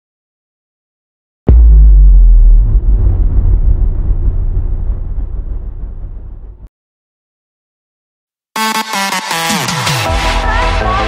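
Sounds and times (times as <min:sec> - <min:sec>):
deep rumbling boom: 0:01.5 - 0:06.7.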